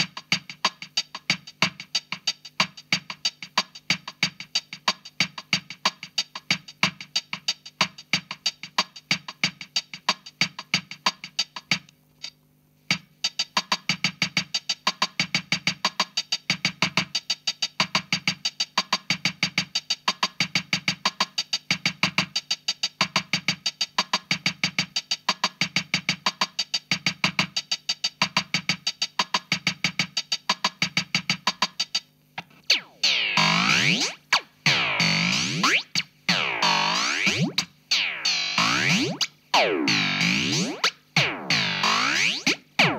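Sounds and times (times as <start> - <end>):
drum machine clicks: 0.0 - 42.9
repeating synth bass: 32.7 - 42.9.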